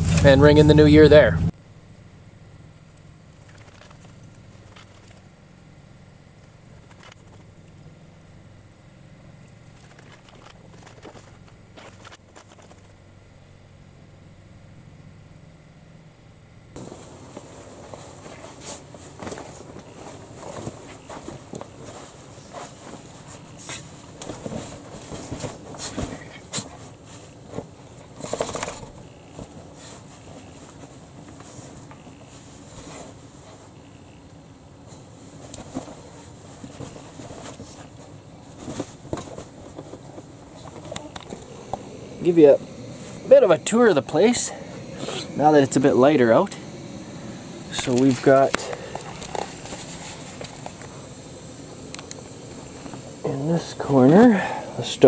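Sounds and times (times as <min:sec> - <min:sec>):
faint low hum: 0:00.0 - 0:55.0
puppy digging in blankets: 0:17.6 - 0:33.7.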